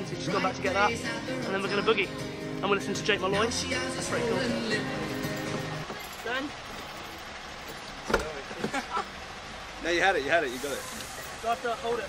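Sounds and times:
outdoor background noise: 0.0s - 12.0s
car door handle clunk: 8.1s - 8.8s.

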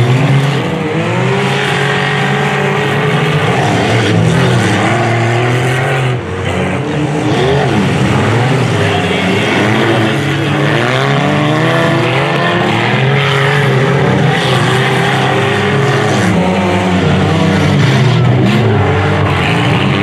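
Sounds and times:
stock car engines racing: 0.0s - 20.0s.

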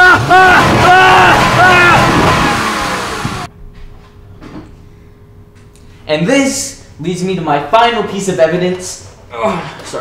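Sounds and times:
car engine accelerating: 0.0s - 3.5s
men yelling: 0.0s - 3.5s
road noise: 0.0s - 3.5s.

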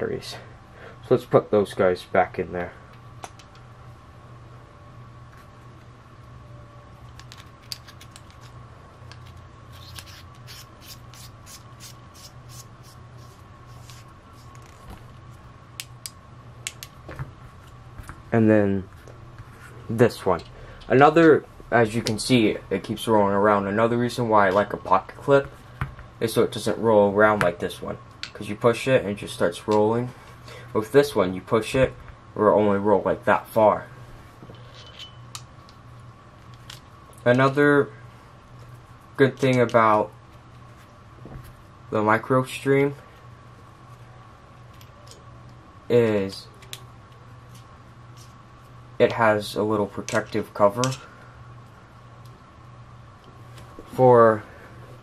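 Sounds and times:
steady low hum: 0.0s - 55.0s.

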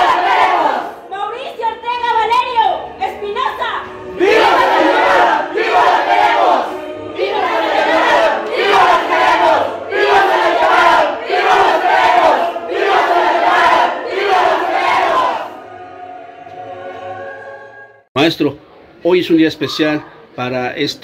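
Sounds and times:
crowd chanting and shouting: 0.0s - 18.1s.

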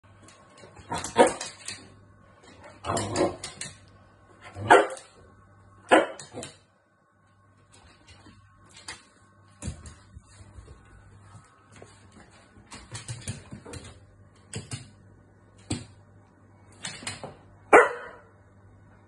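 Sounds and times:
dog barking: 4.6s - 5.1s, 5.9s - 6.4s, 17.7s - 18.3s.

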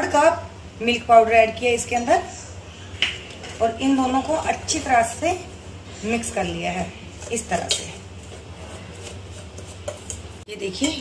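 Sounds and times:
steady low hum: 0.0s - 11.0s
spoon scraping powder in metal bowl: 7.0s - 11.0s.

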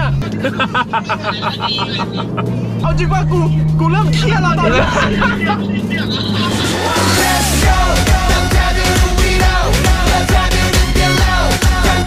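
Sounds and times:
car engine droning in cabin: 0.0s - 12.0s
background music: 2.2s - 12.0s
person speaking: 2.8s - 5.9s.

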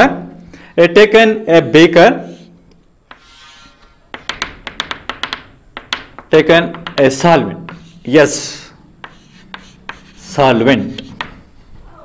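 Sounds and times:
chalk scraping on chalkboard: 2.2s - 11.5s
chalk tapping on board: 3.1s - 11.5s.

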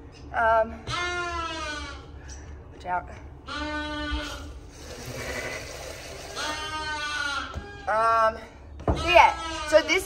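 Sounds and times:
lambs bleating: 0.9s - 2.1s, 3.5s - 8.0s, 9.0s - 10.0s.

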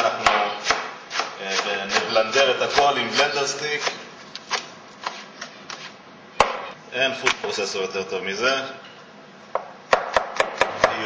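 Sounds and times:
knife chopping herbs on board: 0.0s - 3.2s, 9.6s - 11.0s.

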